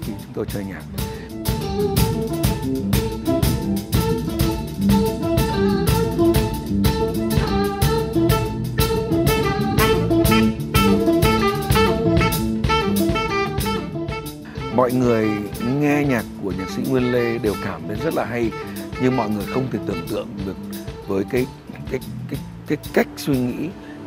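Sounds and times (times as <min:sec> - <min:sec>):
drum kit: 0:00.0 - 0:23.8.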